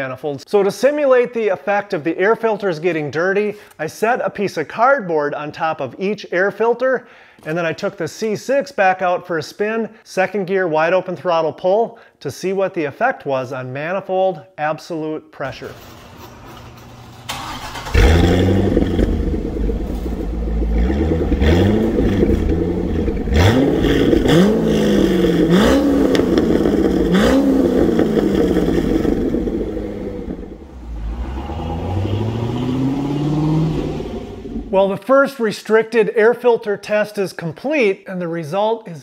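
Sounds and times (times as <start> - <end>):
sports car engine revving: 17.7 - 34.8.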